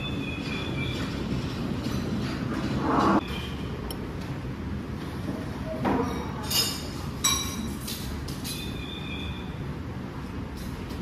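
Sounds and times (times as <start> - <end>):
spoon clinking on ceramic bowl: 6.1 - 7.8.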